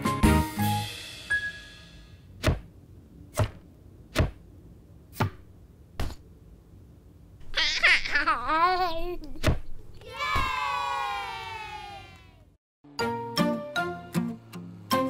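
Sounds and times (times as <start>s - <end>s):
children's tune: 12.8s - 15.0s.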